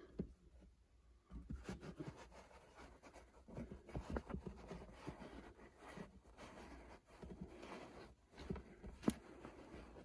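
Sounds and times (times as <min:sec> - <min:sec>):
fabric caps rustling: 0:00.6 - 0:10.0.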